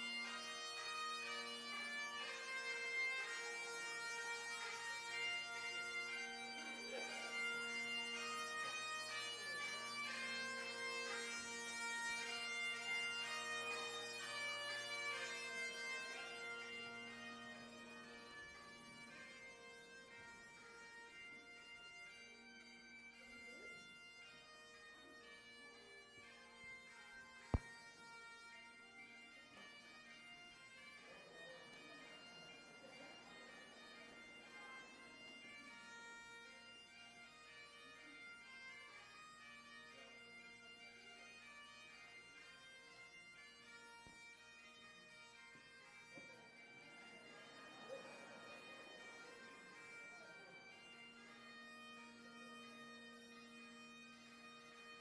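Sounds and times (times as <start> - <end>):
bagpipes playing a tune: 0.0 - 55.0.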